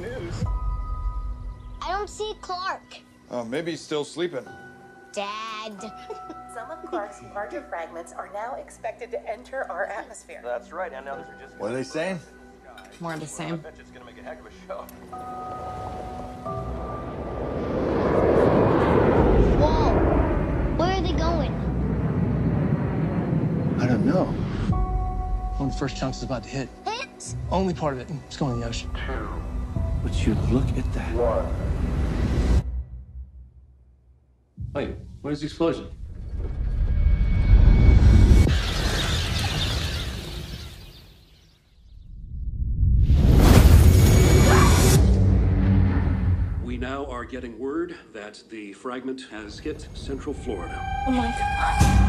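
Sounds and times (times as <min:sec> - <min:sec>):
low rumbling trailer music: 0:00.0 - 0:03.4, 0:13.6 - 0:40.8, 0:42.0 - 0:47.6, 0:49.5 - 0:52.0
harsh crash: 0:43.0 - 0:46.8.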